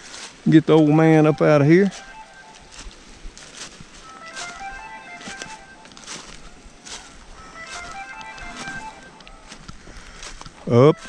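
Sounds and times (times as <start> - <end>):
footsteps crunching dry leaves: 0.0 - 11.0
soft melodic background music: 0.4 - 11.0.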